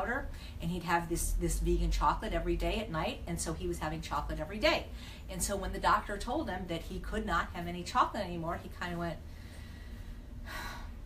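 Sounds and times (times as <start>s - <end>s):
woman speaking: 0.0s - 9.2s.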